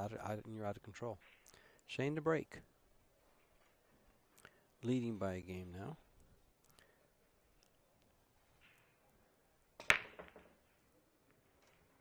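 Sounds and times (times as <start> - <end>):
cue ball hitting racked balls: 9.8 - 10.8
pool balls clattering: 9.8 - 12.0.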